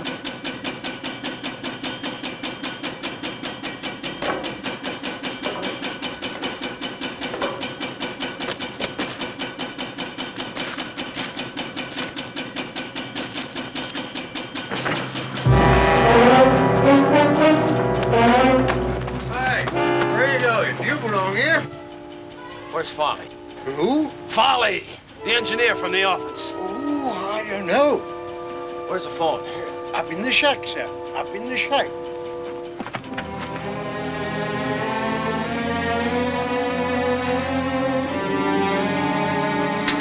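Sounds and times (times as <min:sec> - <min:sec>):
tense orchestral music: 0:14.9 - 0:40.0.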